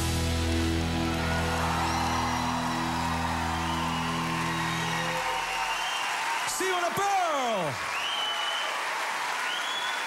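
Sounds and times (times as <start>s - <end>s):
audience cheering and applauding: 0.0s - 10.0s.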